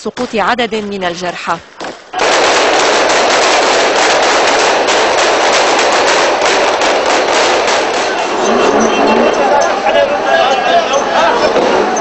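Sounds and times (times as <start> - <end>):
rapid gunfire: 2.2 - 8.4.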